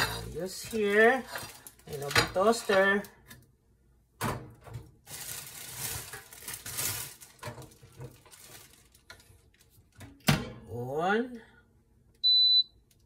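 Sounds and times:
rustling: 0.0 - 2.7, 5.1 - 10.0.

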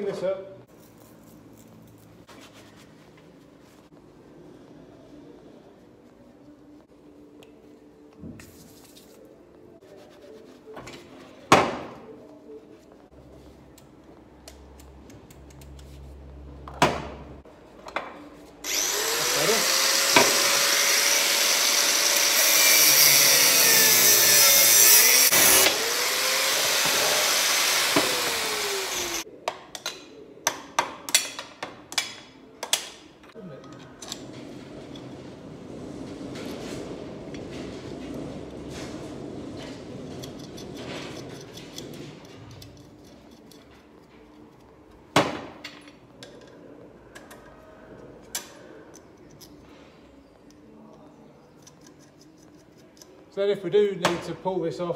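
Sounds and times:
angle grinder cutting steel: 18.6 - 29.2.

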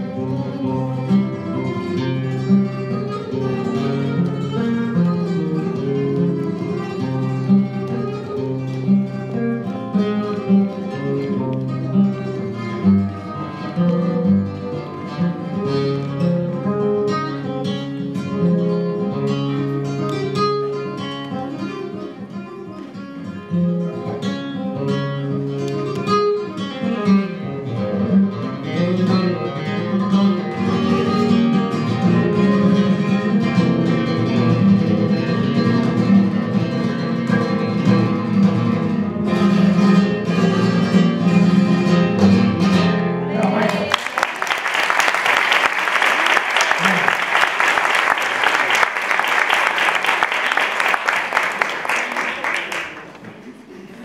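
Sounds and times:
acoustic guitar plucked notes: 0.0 - 43.4.

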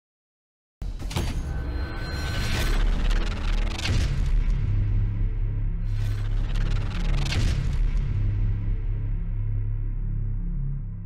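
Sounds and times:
low bass drone: 1.5 - 11.0.

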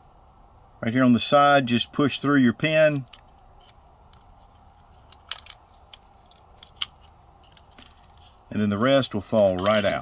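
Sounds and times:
small metal clicks: 3.0 - 8.3, 9.5 - 10.0.

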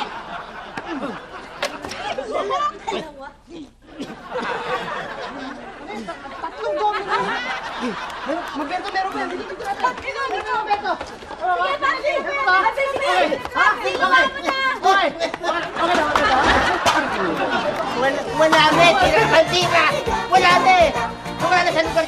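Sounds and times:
people talking and shouting: 0.0 - 22.0.

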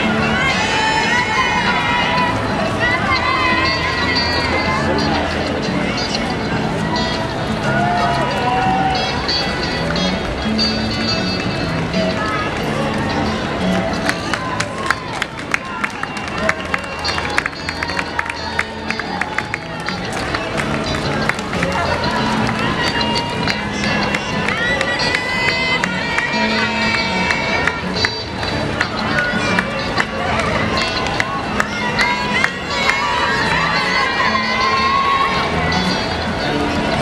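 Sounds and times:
spectators' voices: 0.0 - 37.0.

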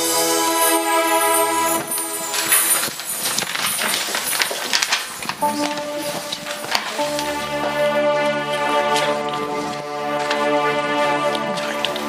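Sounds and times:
rustling: 1.0 - 10.6
electronic keyboard chord: 5.4 - 11.6.

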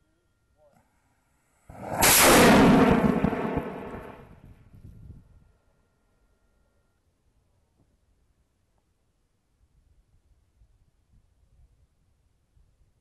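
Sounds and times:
rocket motor exhaust rush: 1.6 - 4.4.

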